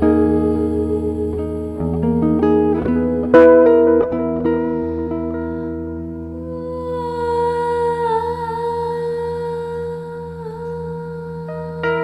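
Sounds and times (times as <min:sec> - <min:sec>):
electric guitar note ringing: 0:00.0 - 0:09.0.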